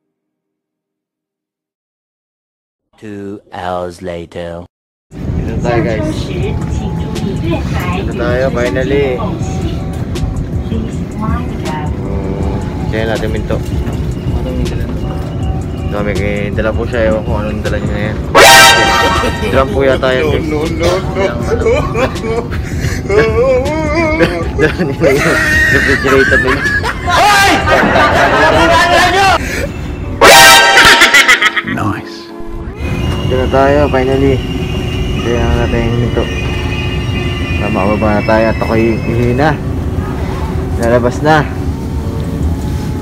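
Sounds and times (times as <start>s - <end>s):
train carriage rumble: 5.2s - 18.4s, 32.8s - 43.0s
music: 5.7s - 26.8s.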